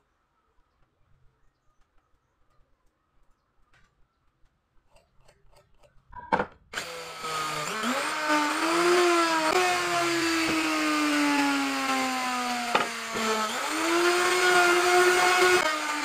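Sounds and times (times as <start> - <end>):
wood router cutting: 6.8 - 16.0.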